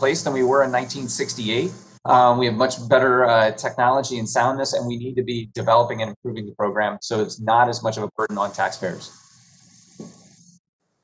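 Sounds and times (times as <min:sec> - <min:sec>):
faint steady hiss: 0:00.0 - 0:10.6.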